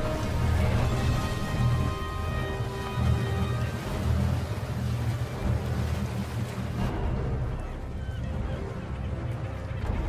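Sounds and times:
sea water washing: 0.0 - 10.0
ship engine rumbling: 0.0 - 10.0.

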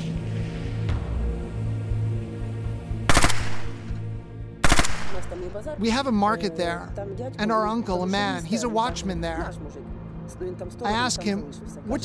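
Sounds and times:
low music drone: 0.0 - 12.0
automatic gunfire: 3.1 - 3.9, 4.6 - 5.6.

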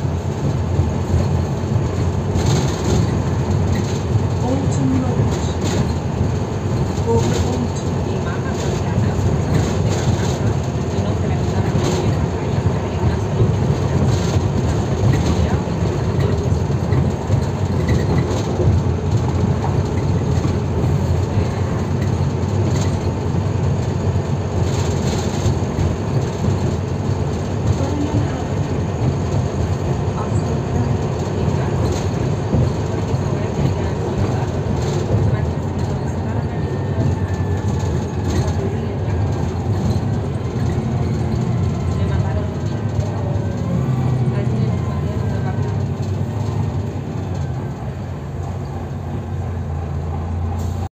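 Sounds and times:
bus body rattles and knocks: 0.0 - 50.8
bus engine and road hum: 0.0 - 50.9.

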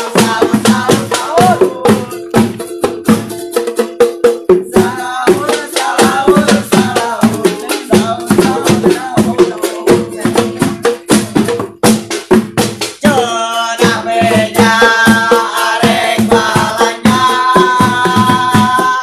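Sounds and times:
voices singing along: 0.0 - 2.4, 4.5 - 11.4, 13.0 - 19.0
drums beaten in rapid rhythm: 0.0 - 19.0.

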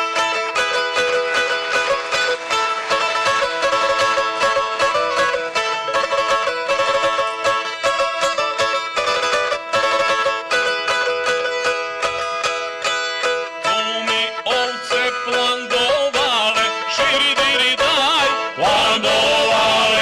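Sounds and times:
plucked lute strokes: 0.0 - 20.0.

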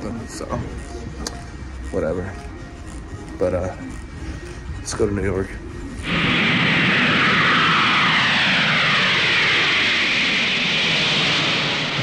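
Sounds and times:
jet engines roaring at takeoff: 5.8 - 12.0.

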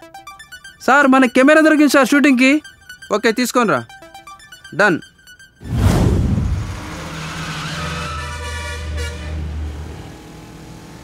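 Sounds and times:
vehicle horn honk: 7.4 - 9.7.

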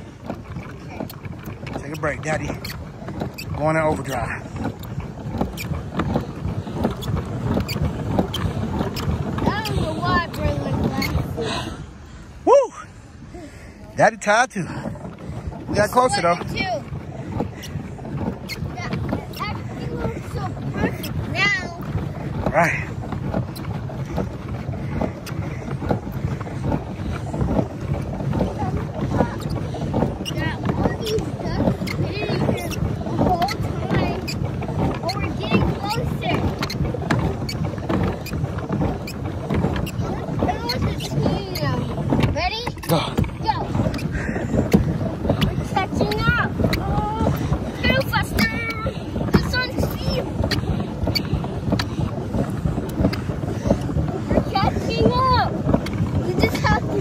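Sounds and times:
wind on microphone: 0.0 - 14.0, 14.6 - 57.0
paddle wheel churning water: 0.0 - 57.0.

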